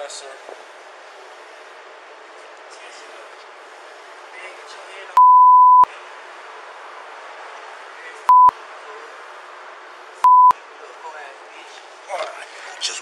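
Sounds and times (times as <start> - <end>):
outdoor noise: 0.0 - 13.0
muffled voices: 2.3 - 5.2, 10.6 - 13.0
censor bleep tone: 5.2 - 5.9, 8.3 - 8.5, 10.2 - 10.6.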